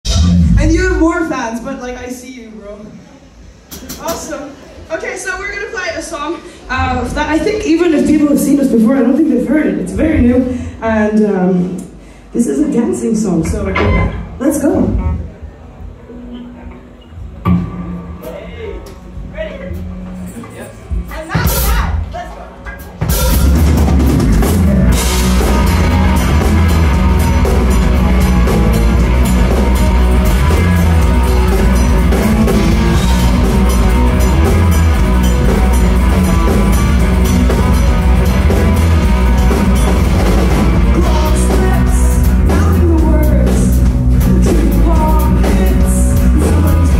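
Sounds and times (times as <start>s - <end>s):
live rock band playing: 0.0s - 1.7s, 3.2s - 46.9s.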